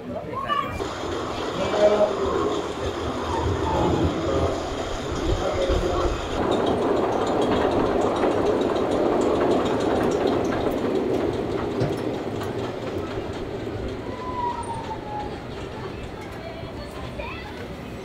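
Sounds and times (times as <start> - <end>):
roller coaster rumbling on track: 0.0 - 18.0.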